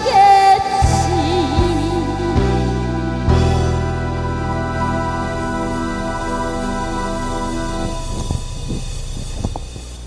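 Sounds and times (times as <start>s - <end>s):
microphone handling rumble: 3.7s - 10.0s.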